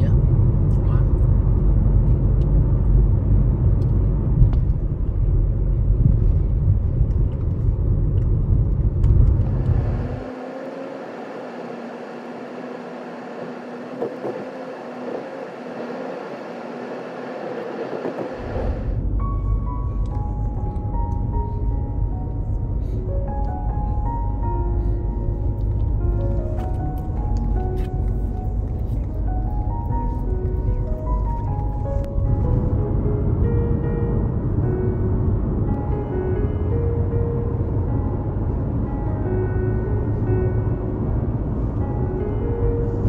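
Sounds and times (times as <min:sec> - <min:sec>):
vehicle rumble: 0:00.0 - 0:43.0
simple background music: 0:19.0 - 0:43.0.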